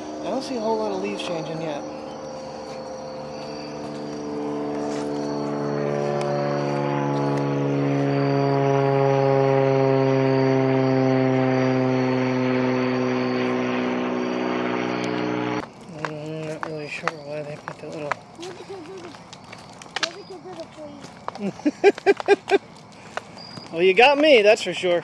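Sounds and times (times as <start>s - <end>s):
small airplane engine hum: 0.0s - 24.6s.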